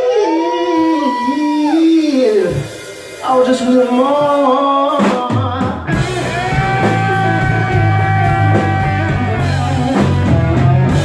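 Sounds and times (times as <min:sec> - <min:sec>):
rock band holding wailing notes: 0:00.0 - 0:11.0.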